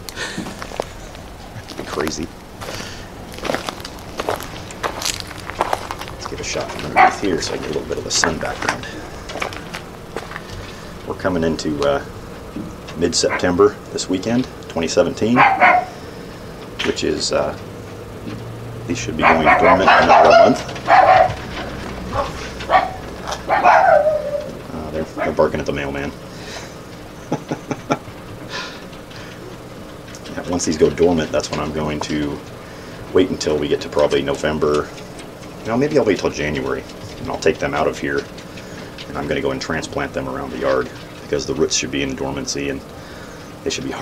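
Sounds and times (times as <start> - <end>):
dogs barking: 4.2 - 11.2, 13.1 - 13.8, 15.0 - 16.4, 19.0 - 25.8.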